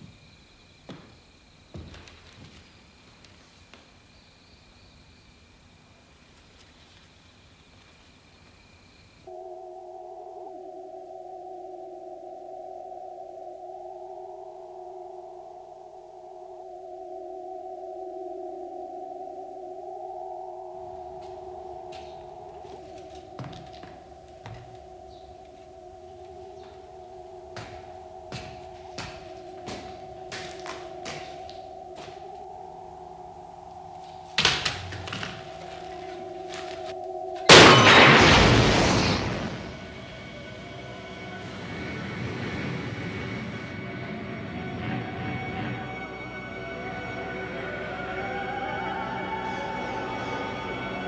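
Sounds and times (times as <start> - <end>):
eerie electronic drone: 8.3 - 51.0
loud crash: 37.5 - 40.6.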